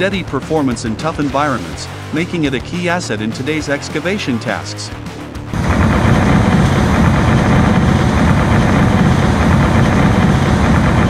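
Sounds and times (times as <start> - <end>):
deep engine rumble: 5.4 - 11.0
cutting drum clattering through rock: 5.5 - 11.0.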